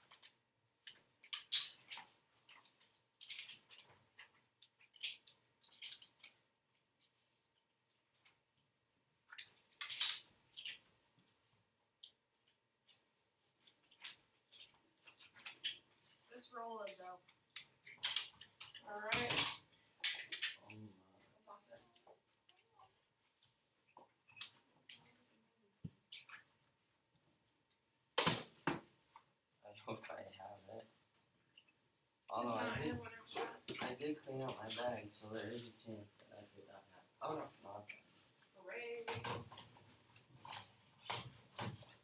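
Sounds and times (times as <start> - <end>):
person talking: 16.3 - 17.2, 32.3 - 37.9.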